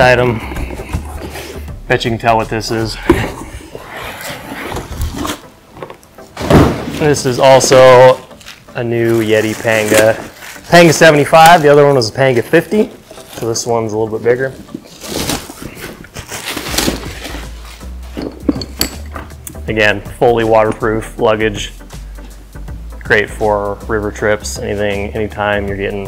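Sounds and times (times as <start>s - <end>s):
cardboard scraping: 3.1s - 7.2s, 7.9s - 18.1s
plastic packaging rustling: 6.9s - 17.8s
plastic bag crinkling: 7.6s - 12.2s.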